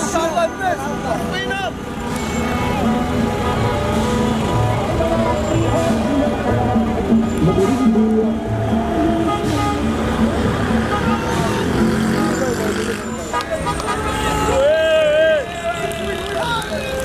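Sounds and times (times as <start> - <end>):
car engines running: 0.0 - 17.0
car horns honking: 0.0 - 17.0
people shouting: 13.5 - 17.0.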